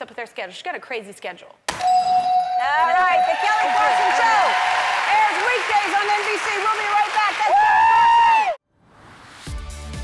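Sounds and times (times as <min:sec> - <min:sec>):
high-pitched cheering whoop: 0:03.1 - 0:05.4, 0:07.4 - 0:08.6.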